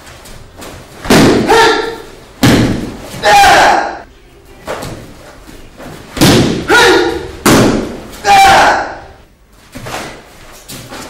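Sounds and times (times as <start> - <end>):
sharp shouts: 1.3 - 2.2, 3.2 - 4.1, 6.5 - 7.4, 8.2 - 9.2.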